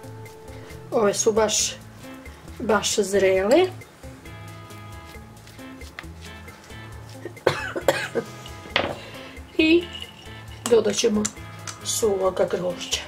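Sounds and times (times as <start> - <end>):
soft background music: 0.0 - 13.0
woman coughing: 7.3 - 8.4.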